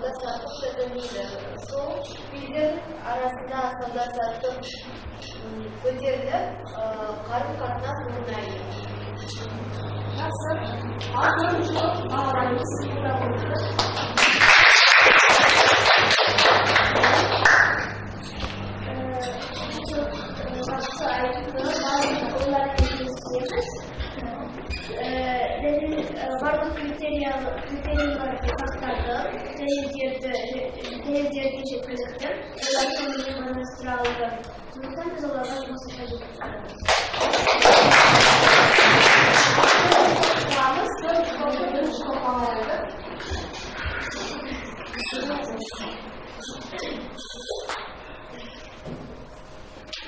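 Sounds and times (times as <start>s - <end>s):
students clapping: 13.8s - 18.6s, 36.8s - 40.9s.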